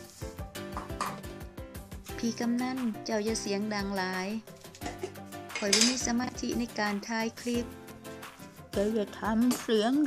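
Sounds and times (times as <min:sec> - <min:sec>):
background music: 0:00.0 - 0:10.0
metal kitchenware clattering: 0:04.6 - 0:06.1.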